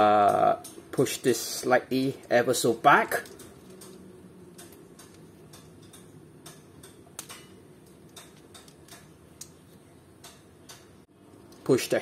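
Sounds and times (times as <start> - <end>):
plastic toy parts clicking: 3.1 - 6.6.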